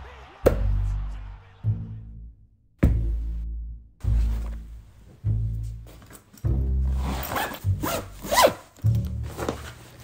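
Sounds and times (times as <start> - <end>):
backpack zipper being pulled: 6.9 - 8.7.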